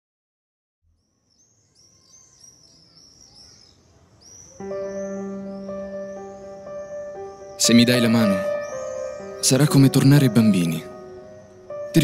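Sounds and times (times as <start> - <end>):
birds chirping: 0.9 - 12.0.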